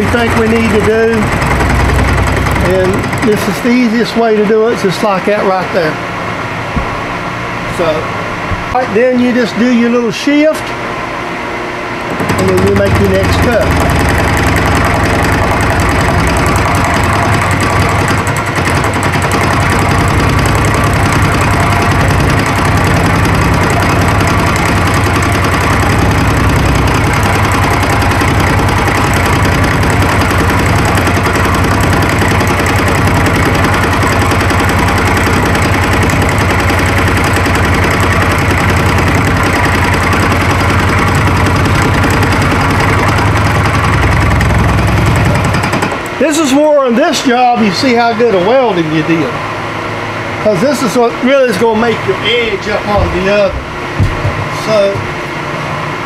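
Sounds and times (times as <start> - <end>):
motor and spindle hum: 0.0 - 56.0.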